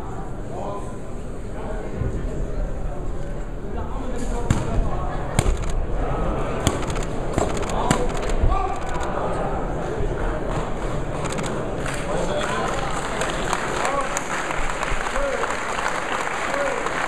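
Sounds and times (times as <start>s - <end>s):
crowd voices and shouting: 0.0s - 17.0s.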